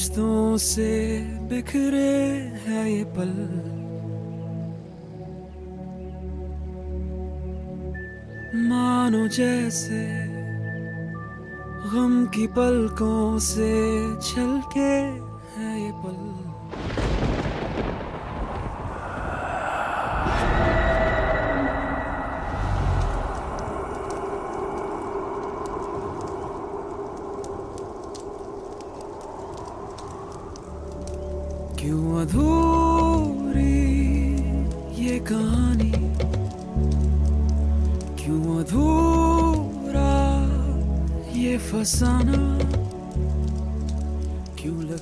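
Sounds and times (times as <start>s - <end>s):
person singing: 0.0s - 3.8s, 8.5s - 10.6s, 11.8s - 16.7s, 18.9s - 26.5s, 31.7s - 36.5s, 38.2s - 43.1s, 44.5s - 45.0s
sad song with held low tones: 0.0s - 45.0s
fire rushing and crackling: 16.7s - 45.0s.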